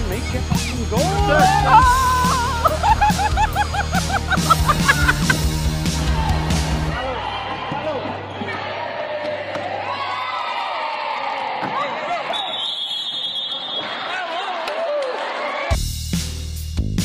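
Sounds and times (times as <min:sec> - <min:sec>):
music: 0:00.0 - 0:08.8, 0:15.7 - 0:17.0
players calling out: 0:00.9 - 0:09.8
referee's whistle blast: 0:12.3 - 0:14.0.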